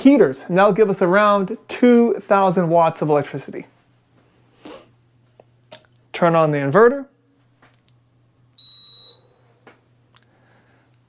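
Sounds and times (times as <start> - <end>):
power inverter beep: 8.6 - 9.4.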